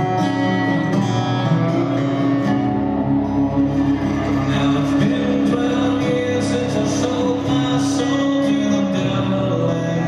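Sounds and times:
acoustic guitar: 0.0s - 10.0s
lap resonator guitar: 0.0s - 10.0s.

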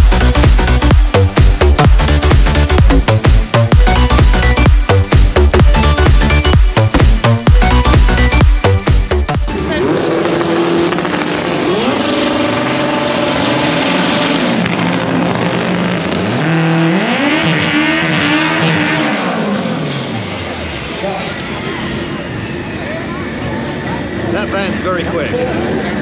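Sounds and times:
drag car engine revving: 0.0s - 22.8s.

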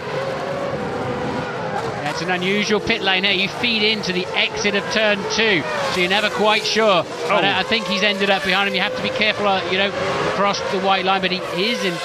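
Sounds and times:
racing car engines at speed: 0.0s - 12.0s.

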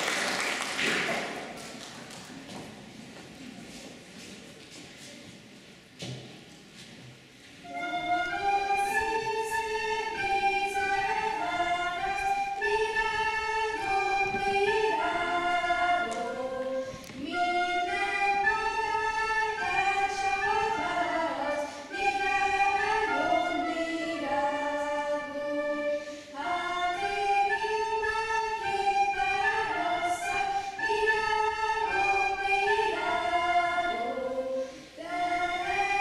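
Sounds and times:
children playing recorders: 7.6s - 36.0s
girls singing: 7.7s - 36.0s.

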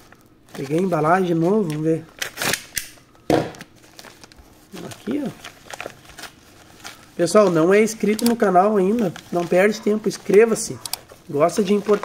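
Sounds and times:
paper envelope rustling: 0.0s - 2.5s, 3.6s - 12.0s.

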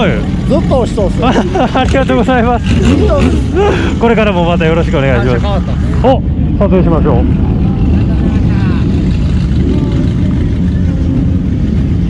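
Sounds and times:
motorcycle engines rumbling: 0.0s - 12.0s
faint voices: 4.7s - 12.0s.

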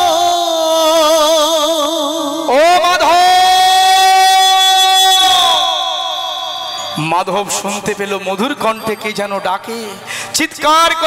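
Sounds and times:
man singing long high call: 0.0s - 8.2s.

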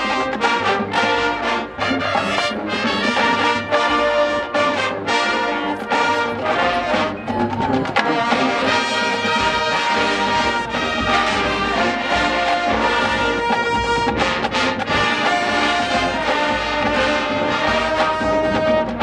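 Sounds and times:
marching band drums: 0.0s - 19.0s
trombones and trumpets: 0.0s - 19.0s.

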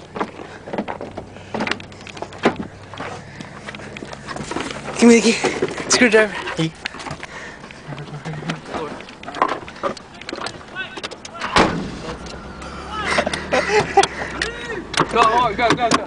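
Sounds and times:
laughter: 7.8s - 8.7s, 13.0s - 14.8s
car engine starting and idling: 11.2s - 16.0s.

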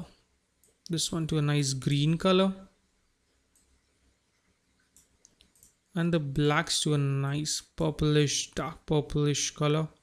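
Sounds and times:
computer mouse clicks: 0.6s - 0.9s, 3.5s - 3.8s, 4.8s - 5.8s.

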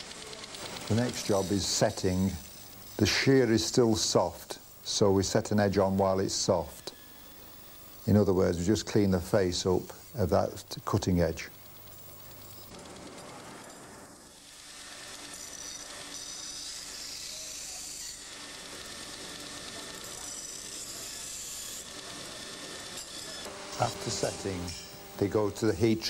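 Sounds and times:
blade on grinding wheel: 0.0s - 26.0s.

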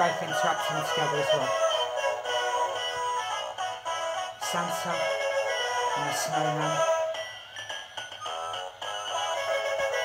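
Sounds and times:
electronic toy melody: 0.0s - 10.0s.

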